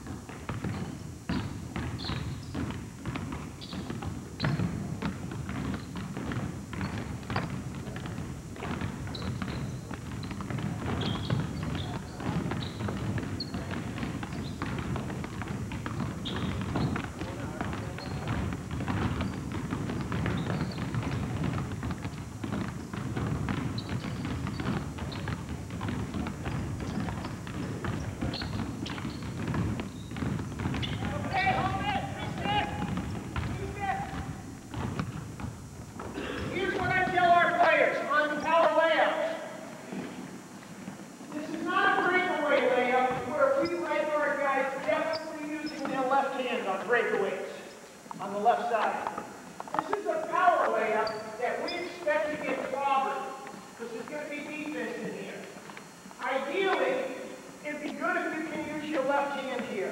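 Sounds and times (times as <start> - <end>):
basketballs bouncing on hardwood floor: 0.0 - 47.2, 48.1 - 59.9
players' voices: 6.3 - 35.1, 36.0 - 40.2, 41.2 - 55.6.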